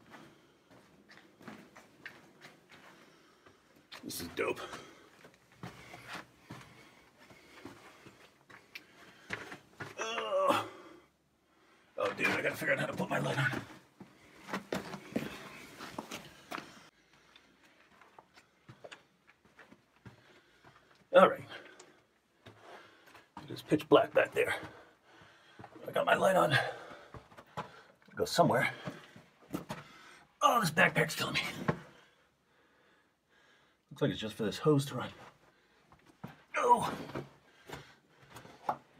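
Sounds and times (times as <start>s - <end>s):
faint breaths: 0.0s - 4.0s, 4.6s - 10.0s, 10.6s - 12.0s, 13.5s - 19.2s, 20.0s - 23.5s, 24.4s - 25.8s, 26.5s - 30.4s, 31.5s - 33.9s, 35.0s - 38.9s.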